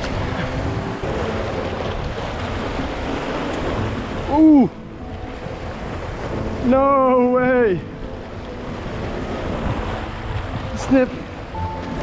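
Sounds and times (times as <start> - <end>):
sea waves washing against rocks: 0.0 - 12.0
wind buffeting microphone: 0.0 - 12.0.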